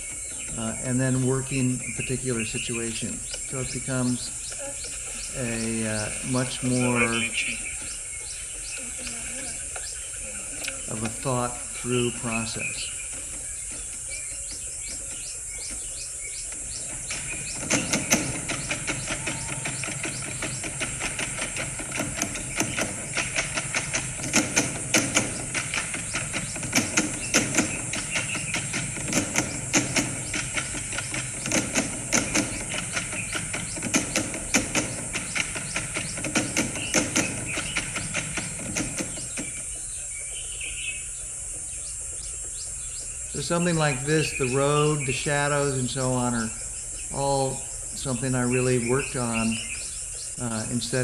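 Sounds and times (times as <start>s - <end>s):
sharp clicks and crunching knocks: 0.0s - 51.0s
steady high hiss: 0.0s - 51.0s.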